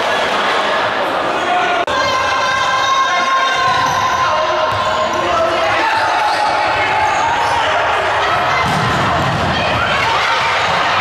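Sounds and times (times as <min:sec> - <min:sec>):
players and spectators shouting: 0:00.0 - 0:11.0.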